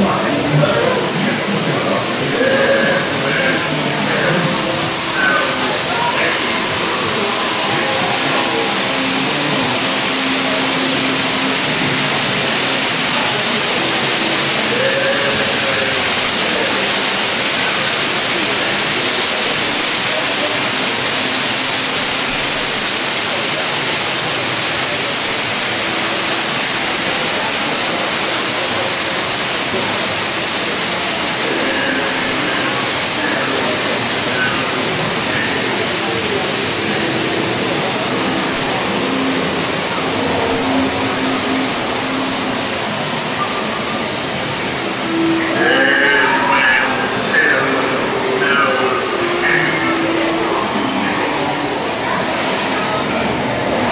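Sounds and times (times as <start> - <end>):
faint voices: 0.0 - 53.9
falling water rushing: 0.0 - 53.9.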